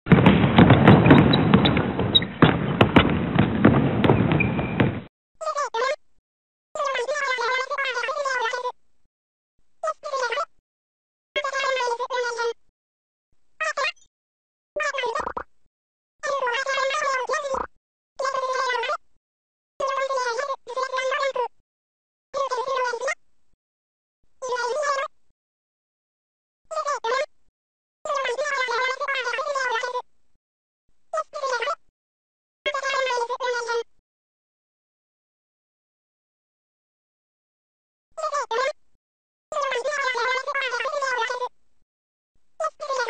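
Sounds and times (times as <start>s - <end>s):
basketball bouncing: 0.1s - 5.1s
dense crackling noise: 0.1s - 5.1s.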